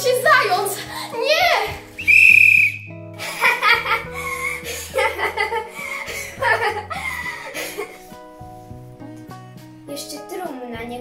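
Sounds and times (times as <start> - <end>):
shrill whistle blast: 2.0 - 3.0.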